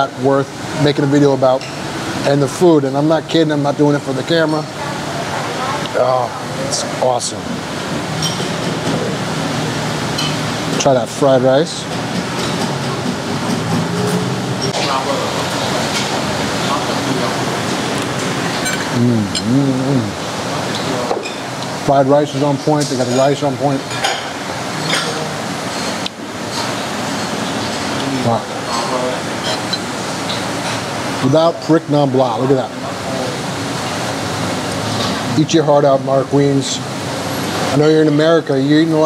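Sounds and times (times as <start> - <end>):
busy eatery background noise: 0.0 - 39.0
street traffic rumble: 1.6 - 21.9.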